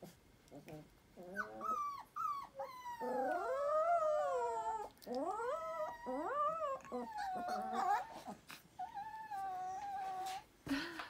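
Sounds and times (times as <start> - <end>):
puppy yelps: 1.2 - 10.3
puppies howling and whining: 1.2 - 10.5.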